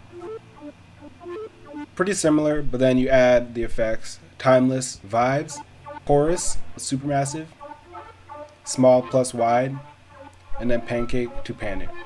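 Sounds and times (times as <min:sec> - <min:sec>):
staccato synthesizer lead: 0:00.0 - 0:02.0, 0:05.2 - 0:12.0.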